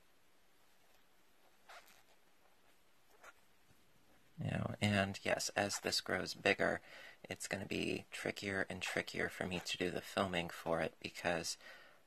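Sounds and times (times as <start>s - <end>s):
soft rustle of crocheted fabric: 0.0s - 11.6s.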